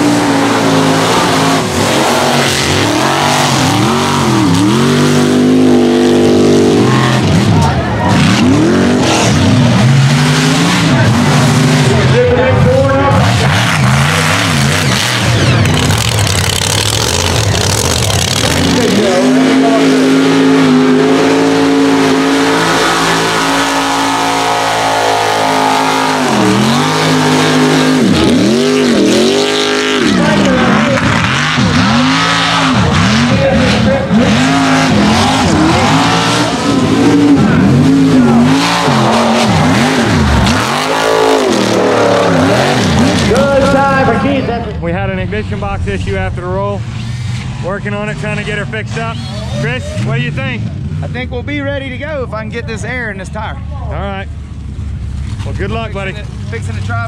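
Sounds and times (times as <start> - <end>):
truck engines revving: 0.0 - 57.0.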